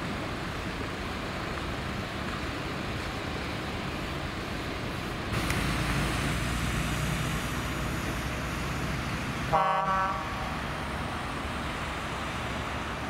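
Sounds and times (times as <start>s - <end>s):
tyre and road noise: 0.0s - 13.0s.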